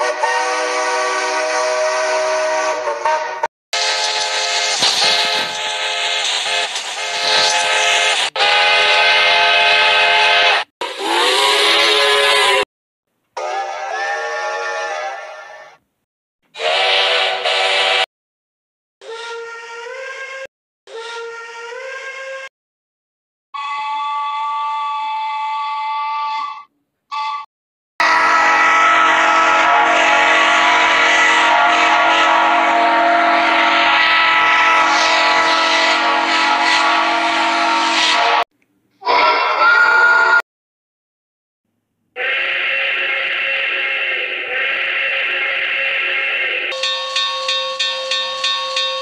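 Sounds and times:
steam locomotive whistle blasts: 0.0 - 12.7, 13.4 - 15.8, 16.6 - 18.1, 23.6 - 40.4, 42.2 - 49.0.

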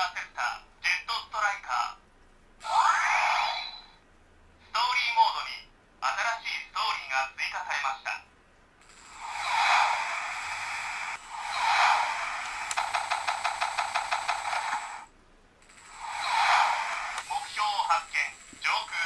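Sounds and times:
electronic whooshing effects: 2.6 - 4.0, 8.9 - 13.1, 15.9 - 17.3
toy electronic voice: 17.2 - 19.0.

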